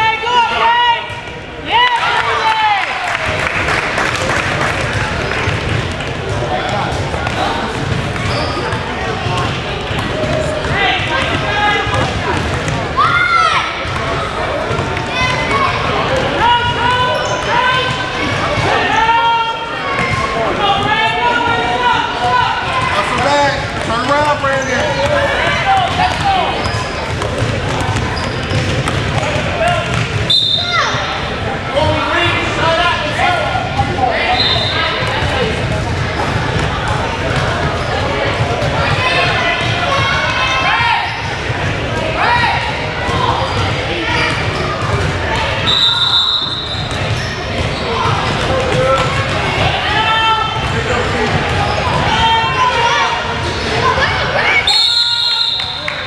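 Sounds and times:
voices shouting and chattering: 0:00.0 - 0:56.0.

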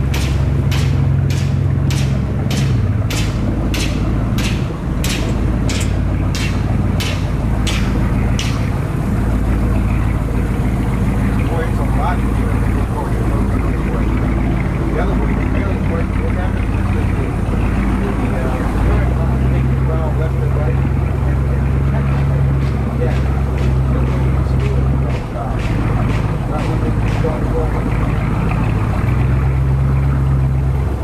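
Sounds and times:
boat engine droning: 0:00.0 - 0:31.0.

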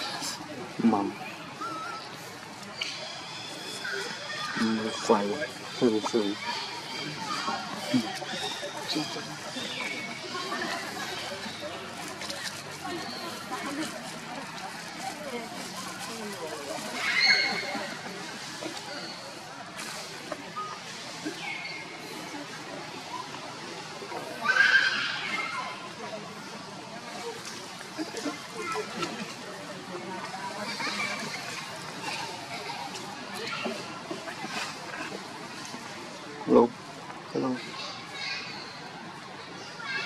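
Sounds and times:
murmur of distant voices: 0:00.0 - 0:40.0.

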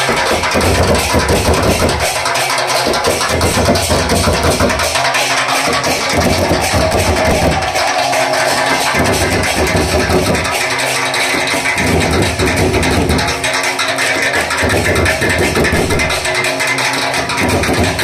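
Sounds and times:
drum and cymbal band playing: 0:00.0 - 0:18.0
low drum beats: 0:05.8 - 0:13.2.

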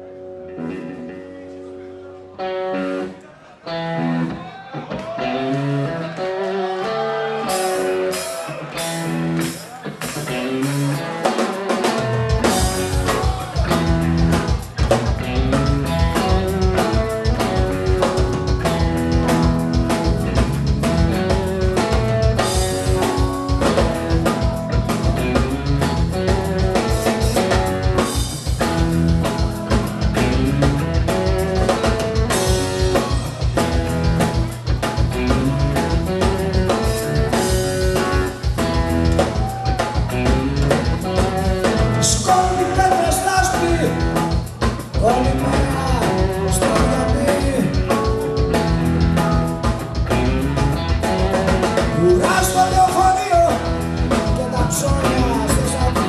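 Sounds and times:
bass guitar: 0:00.0 - 0:56.0
electric guitar melody: 0:00.0 - 0:56.0
drums beating: 0:06.6 - 0:56.0.

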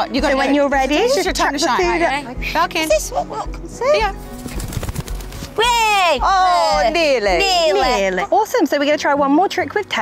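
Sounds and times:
faint background music: 0:00.0 - 0:10.0
falcon wingbeats fluttering: 0:04.2 - 0:05.8.

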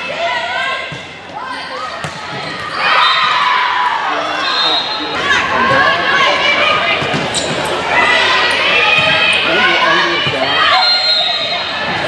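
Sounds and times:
volleyball hits: 0:00.7 - 0:03.4.

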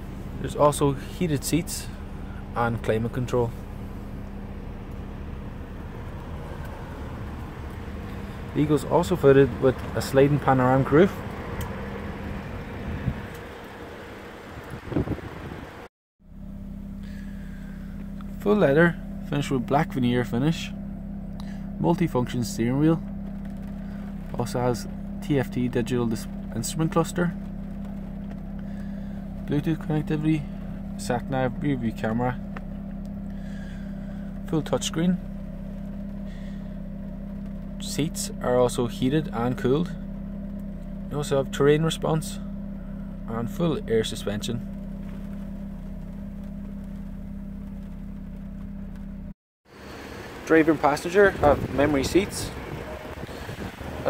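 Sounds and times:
diesel engine idling: 0:00.0 - 0:54.0.

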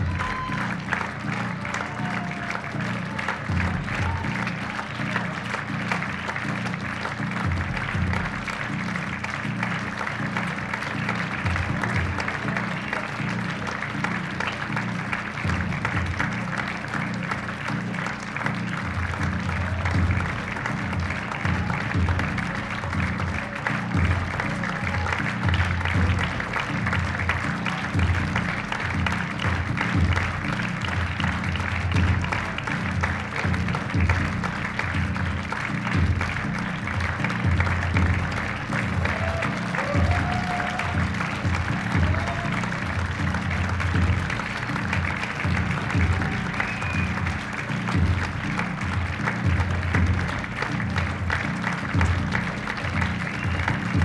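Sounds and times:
audience applauding: 0:00.0 - 0:54.0
music with pulsing bass beat: 0:00.0 - 0:54.0.

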